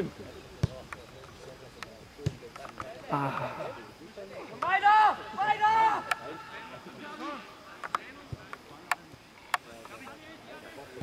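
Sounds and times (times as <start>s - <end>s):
faint spectators talking: 0.0s - 11.0s.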